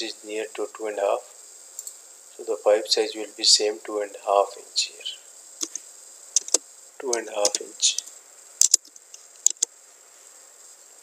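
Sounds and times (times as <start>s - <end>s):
faint high-pitched hiss: 0.0s - 11.0s
computer input clicks: 6.4s - 8.9s, 9.5s - 9.7s.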